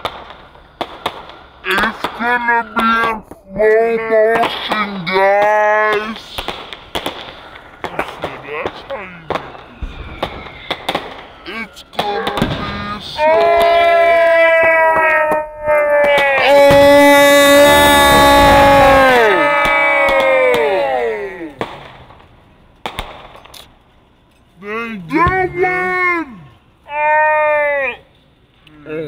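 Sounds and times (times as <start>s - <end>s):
fireworks banging: 0.0s - 26.8s
deep firework thud: 6.4s - 11.4s, 12.0s - 13.0s.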